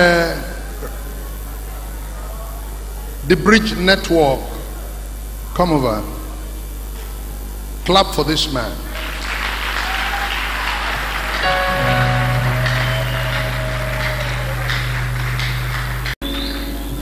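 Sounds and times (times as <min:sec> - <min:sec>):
audience applauding: 0:08.9 - 0:17.0
music of long held chords: 0:11.4 - 0:17.0.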